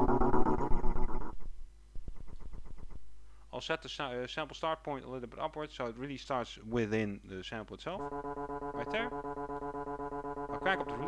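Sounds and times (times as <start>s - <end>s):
stuttering sampled sound: 0.0s - 3.0s, 8.0s - 11.0s.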